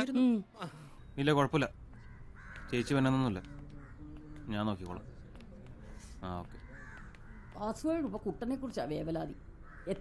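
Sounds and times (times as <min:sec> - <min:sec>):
bird calling: 0:01.9 - 0:08.4.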